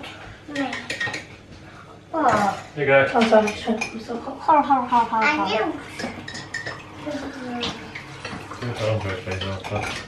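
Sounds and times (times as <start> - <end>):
crockery and cutlery clinking: 0.5 - 1.4, 2.2 - 4.2, 5.2 - 7.0, 7.6 - 10.0.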